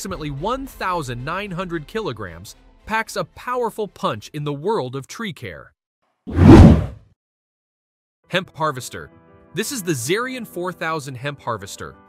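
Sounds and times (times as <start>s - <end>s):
whoosh sound effect: 6.3s - 7.0s.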